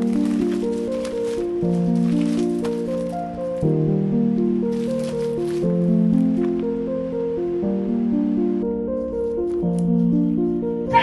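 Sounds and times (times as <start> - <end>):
bubble wrap crinkling: 0.0 - 3.7, 4.4 - 6.6
background music with held notes: 0.0 - 11.0.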